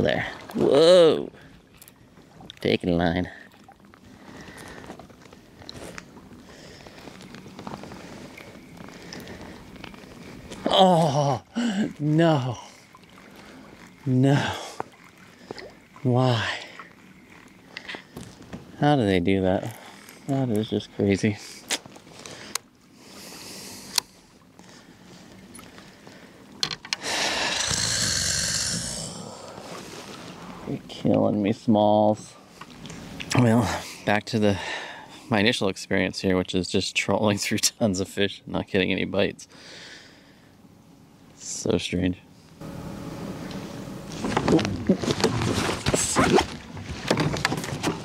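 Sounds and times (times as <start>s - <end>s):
water splashing: 7.9s - 18.5s
thin reel whine: 42.6s - 45.2s.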